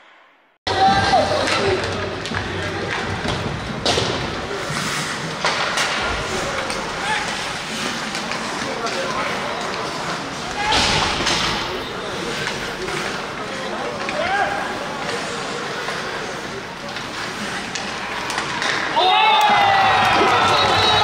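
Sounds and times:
arena crowd noise: 0.7 - 21.0
skates scraping on ice: 0.8 - 21.0.

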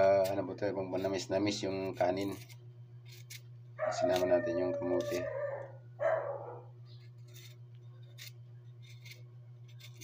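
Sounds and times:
knife scraping sweet potato skin: 0.0 - 5.3, 6.9 - 10.0
steady low hum: 0.0 - 10.0.

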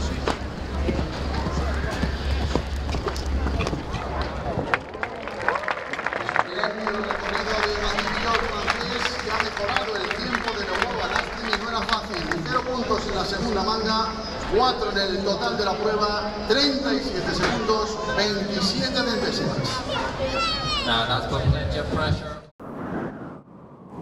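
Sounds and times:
crowd clapping: 3.2 - 14.1
man talking: 6.2 - 19.8.

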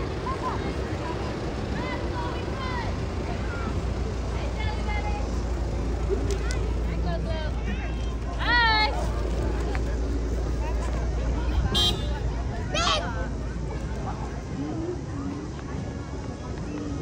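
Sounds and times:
car engine rumble: 0.0 - 17.0
voices of onlookers: 0.0 - 17.0.

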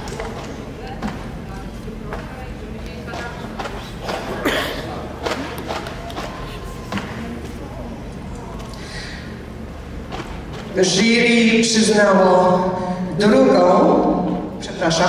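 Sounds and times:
indistinct voices in a hall: 0.0 - 15.0.

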